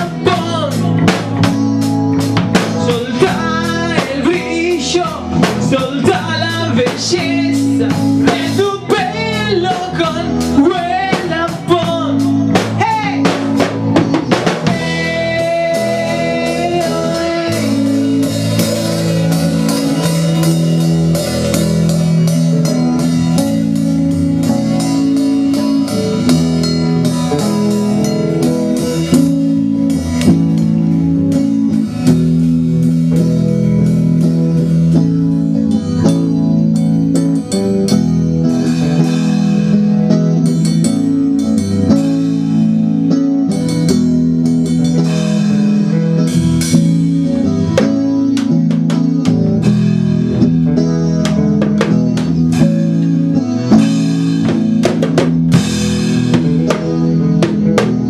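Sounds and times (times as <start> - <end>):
drum kit with cymbal strikes: 0.0 - 58.0
electric guitar jamming: 0.0 - 58.0.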